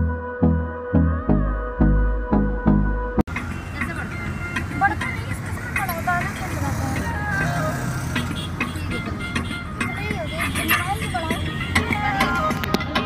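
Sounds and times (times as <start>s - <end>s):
background music: 0.0s - 13.0s
car engine and road rumble: 2.1s - 13.0s
voices: 3.6s - 13.0s.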